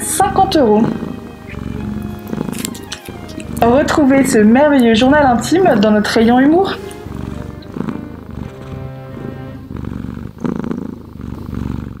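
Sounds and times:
background music: 0:00.0 - 0:10.1
cat purring: 0:00.0 - 0:12.0.

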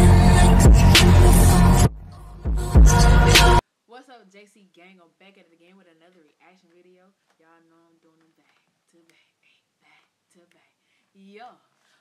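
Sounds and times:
woman whispering: 0:07.4 - 0:11.7.

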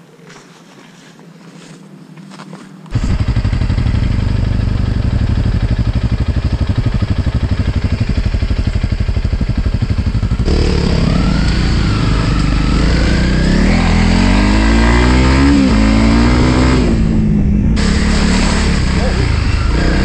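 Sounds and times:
motorcycle engine running and revving: 0:02.9 - 0:20.0.

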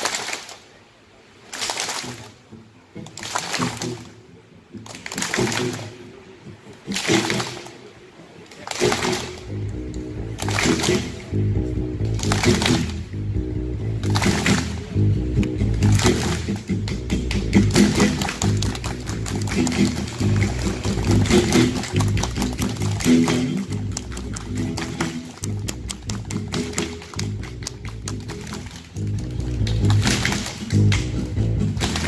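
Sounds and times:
audience clapping along: 0:00.0 - 0:00.8, 0:01.4 - 0:02.4, 0:03.0 - 0:04.2, 0:04.8 - 0:06.1, 0:06.8 - 0:07.8, 0:08.4 - 0:11.4, 0:12.0 - 0:13.1, 0:14.0 - 0:15.0, 0:15.6 - 0:32.0
band with rhythmic bass line: 0:02.9 - 0:07.8, 0:08.7 - 0:32.0.

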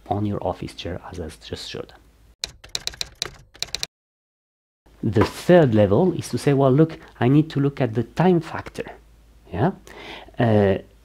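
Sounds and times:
keyboard typing clicks: 0:02.4 - 0:03.9.

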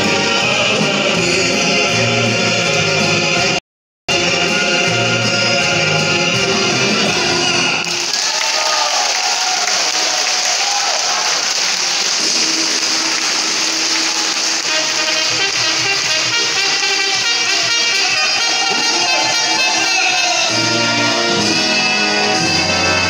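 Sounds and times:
ensemble song with voices: 0:00.0 - 0:08.4
audience applauding: 0:07.8 - 0:21.3.

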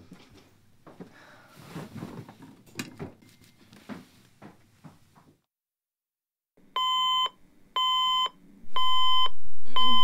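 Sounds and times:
bedding rustling: 0:00.0 - 0:05.4.

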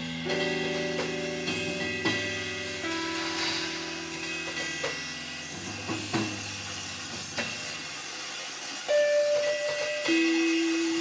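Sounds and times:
sharp struck hits: 0:00.0 - 0:08.1
loud sustained note: 0:00.2 - 0:08.1
hissing noise texture: 0:00.7 - 0:11.0.

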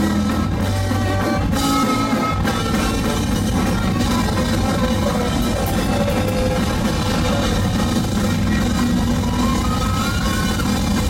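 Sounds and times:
ska band playing with horns: 0:00.0 - 0:11.0.

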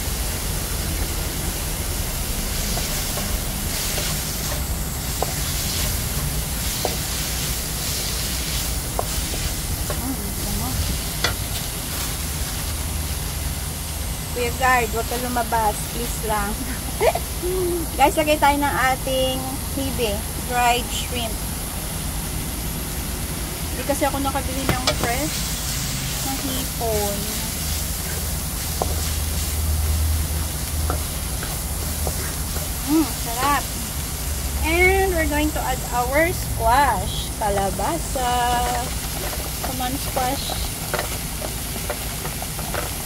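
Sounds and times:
food sizzling in a wok: 0:00.0 - 0:43.0
spatula scraping wok: 0:01.0 - 0:13.5, 0:23.8 - 0:43.0.

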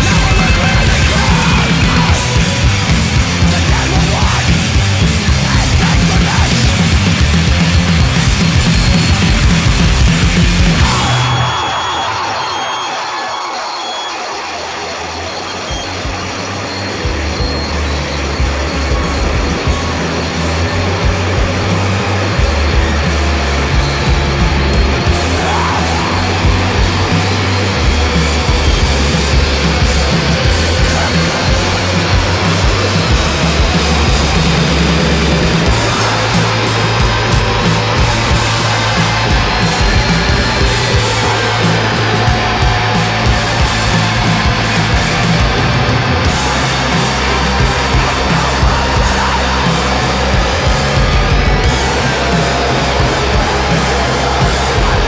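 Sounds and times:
low bass notes: 0:00.0 - 0:11.4, 0:16.2 - 0:55.0
distorted noisy guitar: 0:00.0 - 0:55.0
harsh grinding hissing noise: 0:00.0 - 0:55.0.

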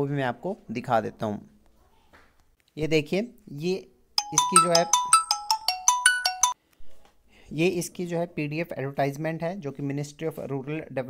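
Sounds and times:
mobile phone ringtone: 0:04.2 - 0:06.6.

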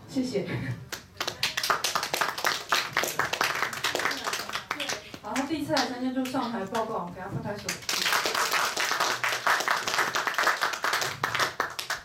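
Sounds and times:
audience applause: 0:01.3 - 0:05.1, 0:07.8 - 0:12.0.

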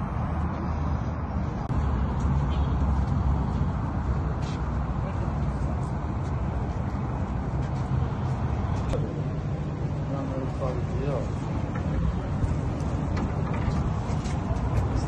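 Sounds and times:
low rumbling background noise: 0:00.0 - 0:15.0.

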